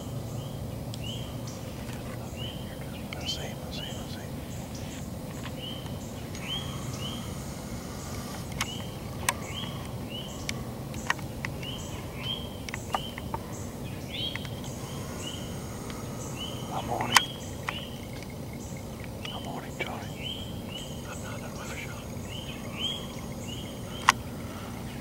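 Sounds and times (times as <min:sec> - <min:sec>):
small animal chirping: 0:02.5 - 0:24.2.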